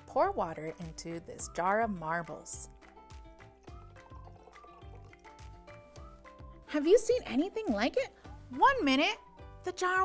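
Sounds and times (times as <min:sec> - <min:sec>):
light background music with beat: 0:00.0 - 0:10.0
water pouring into glass: 0:00.6 - 0:08.5.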